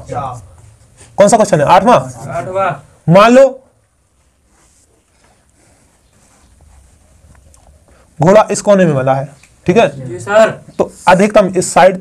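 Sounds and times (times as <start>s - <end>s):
marker strokes on whiteboard: 4.1s - 8.2s.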